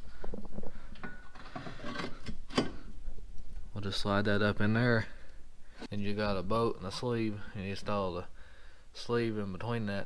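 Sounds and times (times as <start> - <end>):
metal clinks and scrapes: 1.0 - 2.9.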